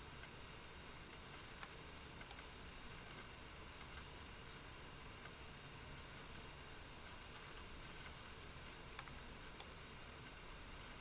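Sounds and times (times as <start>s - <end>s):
faint microphone hiss: 0.0s - 11.0s
computer mouse clicks: 1.1s - 4.6s, 8.9s - 10.4s.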